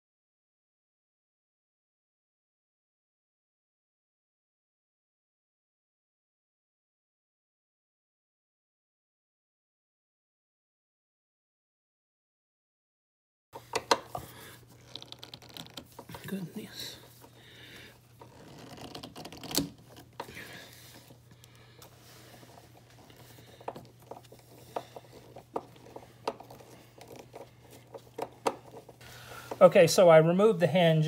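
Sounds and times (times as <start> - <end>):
nut driver clicking on screws: 13.6 - 14.1
steady low hum: 13.6 - 31.0.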